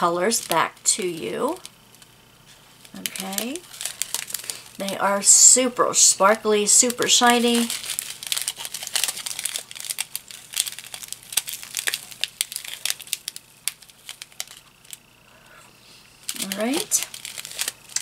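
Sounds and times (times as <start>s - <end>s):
plastic packets crinkling: 0.0s - 15.2s, 16.2s - 18.0s.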